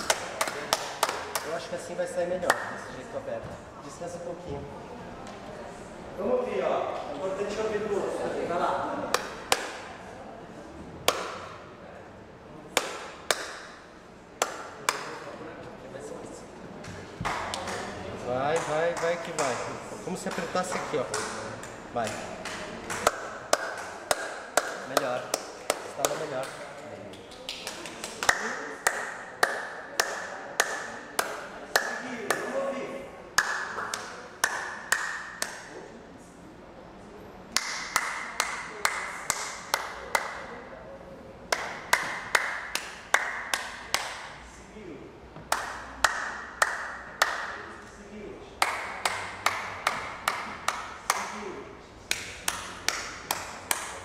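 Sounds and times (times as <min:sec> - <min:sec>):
people clapping hands: 0:00.0 - 0:01.8, 0:02.4 - 0:02.9, 0:09.1 - 0:10.0, 0:11.0 - 0:11.6, 0:12.7 - 0:13.8, 0:14.4 - 0:15.2, 0:17.1 - 0:32.6, 0:33.3 - 0:35.8, 0:37.5 - 0:40.6, 0:41.5 - 0:44.4, 0:45.4 - 0:47.9, 0:48.6 - 0:54.0.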